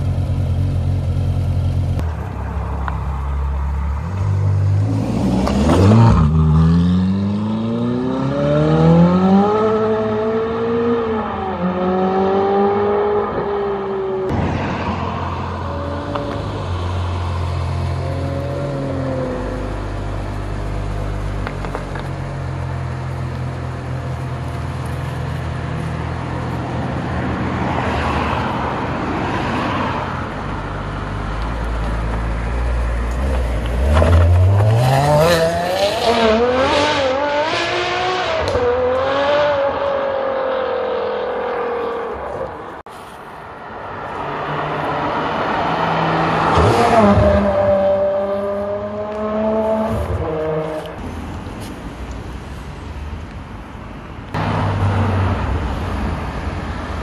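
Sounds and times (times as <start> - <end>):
car engine idling and revving: 0.0 - 57.0.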